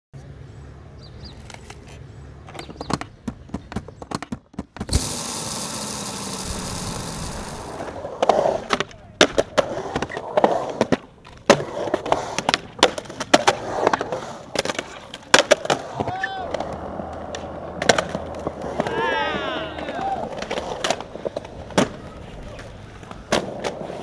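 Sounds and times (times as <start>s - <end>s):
skateboard rolling on concrete: 0.2s - 24.0s
skateboard clacking on concrete: 1.4s - 24.0s.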